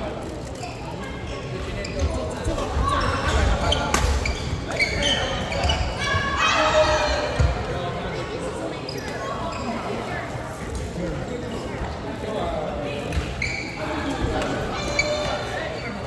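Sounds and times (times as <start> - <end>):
players' voices: 0.0 - 16.0.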